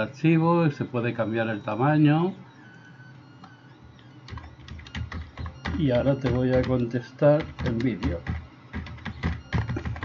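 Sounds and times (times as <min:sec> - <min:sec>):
computer keyboard typing: 0:03.4 - 0:10.0.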